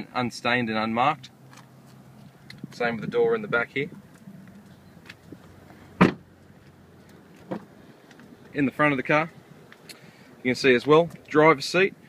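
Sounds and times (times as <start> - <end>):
car door slamming: 6.0 - 6.3, 7.4 - 7.8.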